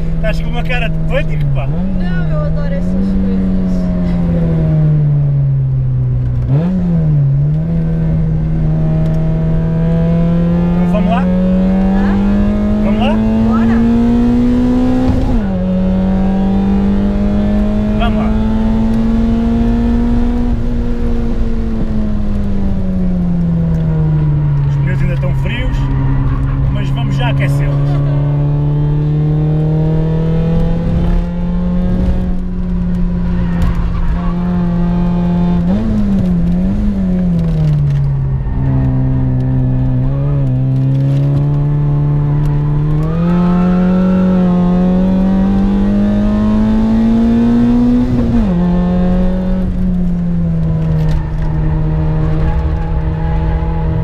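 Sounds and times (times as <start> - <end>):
race car engine accelerating: 0.0 - 5.4, 6.0 - 54.0.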